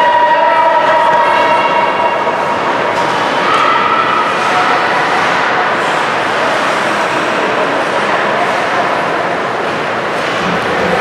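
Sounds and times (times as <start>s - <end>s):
indoor ice rink ambience: 0.0s - 11.0s.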